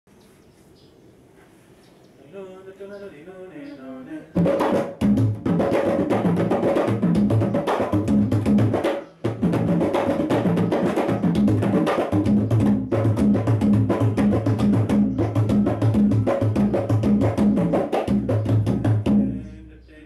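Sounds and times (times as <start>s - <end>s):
hand drums playing fast patterns: 4.4s - 19.4s.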